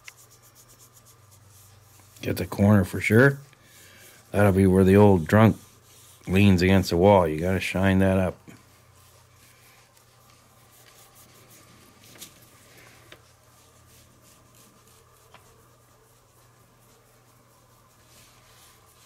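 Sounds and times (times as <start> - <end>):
paintbrush rubbing on model bricks: 0.0 - 19.0.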